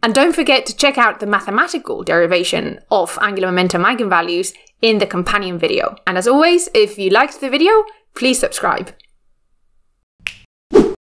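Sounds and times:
short sharp snap: 0:10.2 - 0:11.0.

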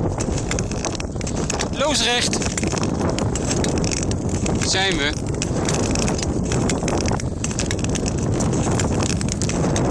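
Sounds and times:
ice cracking under skates: 0:00.0 - 0:09.9.

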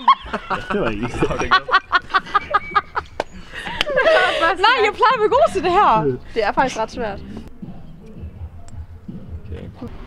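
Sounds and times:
young woman laughing: 0:00.0 - 0:04.8.

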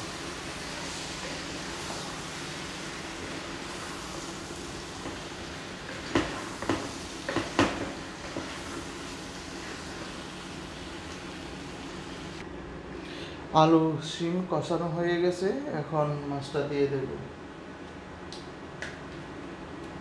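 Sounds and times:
vegetables sizzling in oil: 0:00.0 - 0:12.4.

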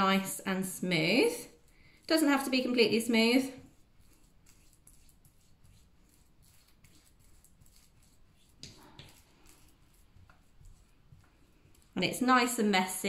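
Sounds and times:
fork mashing banana: 0:01.5 - 0:12.2.

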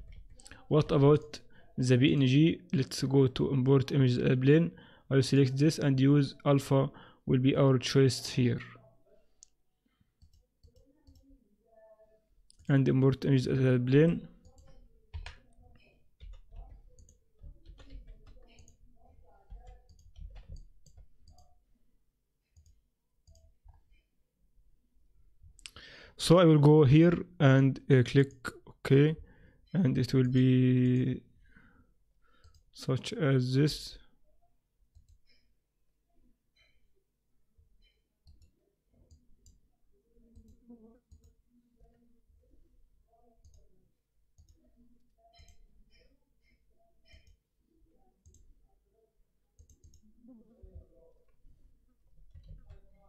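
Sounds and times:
computer mouse clicks: 0:10.2 - 0:11.3, 0:32.4 - 0:32.7, 0:34.9 - 0:35.4, 0:37.8 - 0:38.5, 0:40.3 - 0:42.0, 0:43.4 - 0:43.7, 0:44.4 - 0:44.6, 0:45.3 - 0:47.4, 0:48.2 - 0:48.5, 0:49.6 - 0:50.1.

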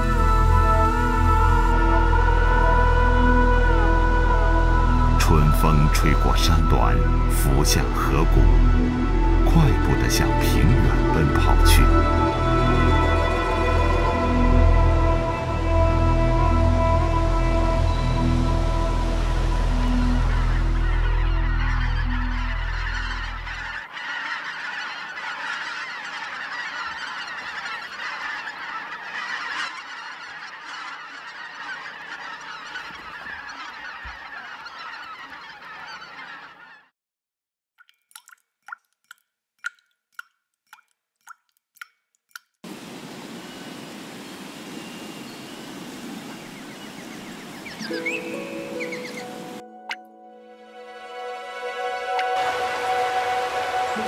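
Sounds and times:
soft background music: 0:00.0 - 0:23.8, 0:47.7 - 0:54.0
geese honking: 0:00.0 - 0:36.9, 0:43.2 - 0:50.1, 0:50.8 - 0:54.0.

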